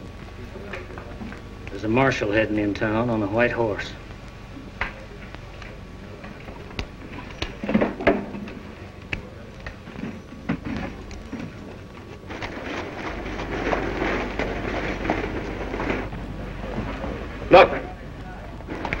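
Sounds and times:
horse hooves on dirt: 0.0 - 17.4
old film hiss and crackle: 0.0 - 19.0
street noise: 0.0 - 19.0.

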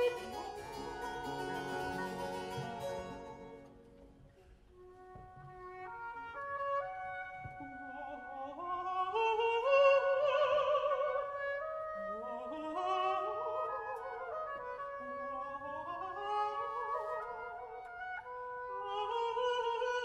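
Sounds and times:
person singing: 0.0 - 3.8
string orchestra playing: 0.0 - 4.4.

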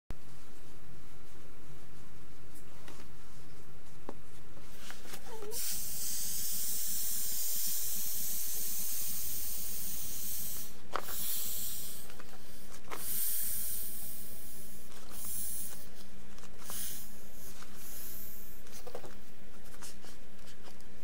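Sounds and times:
air hissing out of valve: 5.4 - 15.9, 16.6 - 18.6.

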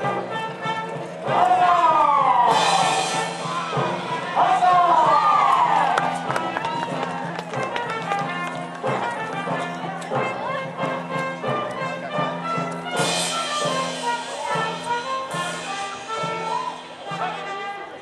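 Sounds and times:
music with held notes: 0.0 - 18.0
people shouting: 1.2 - 7.3, 15.9 - 17.5.

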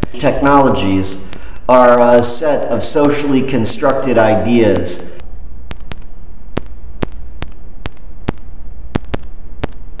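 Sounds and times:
low hum and hiss: 0.0 - 10.0
sharp digital clicks: 4.7 - 10.0.

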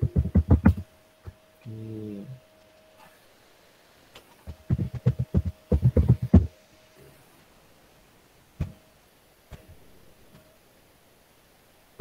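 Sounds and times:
keyboard typing: 4.7 - 6.5.

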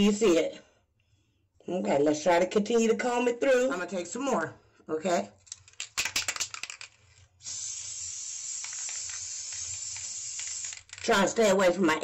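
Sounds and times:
aerosol spray hiss: 7.4 - 11.0.

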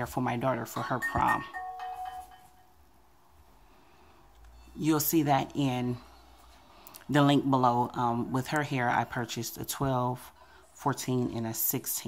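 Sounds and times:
faint ringing chime tone: 0.8 - 2.7.

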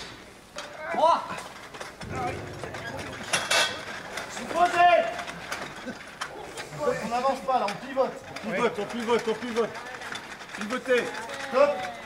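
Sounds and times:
metal tent frame clanking: 1.7 - 6.3.

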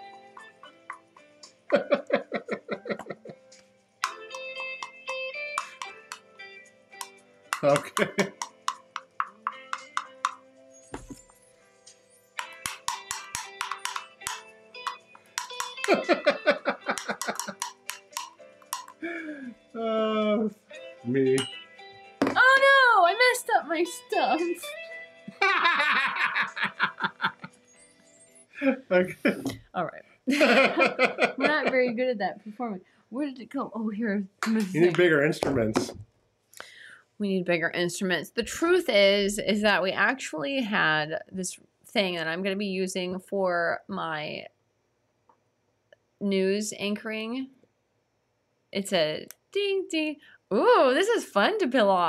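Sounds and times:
background music: 0.0 - 36.0, 36.6 - 41.4
bursts of laughter: 1.7 - 3.3, 25.3 - 27.5
wordless voice sounds: 28.6 - 29.6, 34.6 - 36.0.

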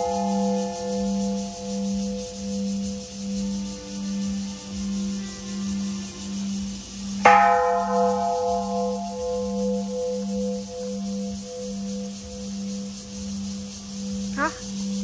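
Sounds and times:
temple bell clanging: 0.0 - 3.7, 7.2 - 12.9.

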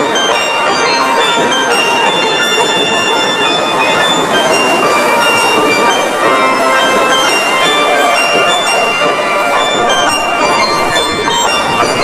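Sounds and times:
steel pan band music: 0.0 - 12.0.

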